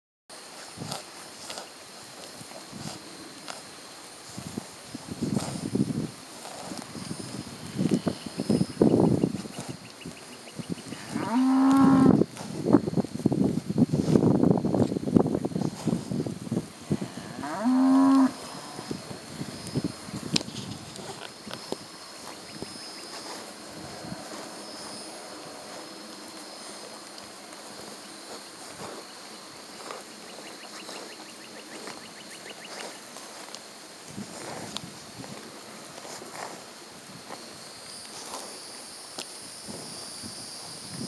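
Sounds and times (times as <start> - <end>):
steady hiss: 0.3 - 41.0
faint ticks and rustles: 0.4 - 41.0
cow tearing grass: 0.5 - 10.2, 10.8 - 40.2
cow mooing: 10.9 - 12.2, 16.9 - 18.9.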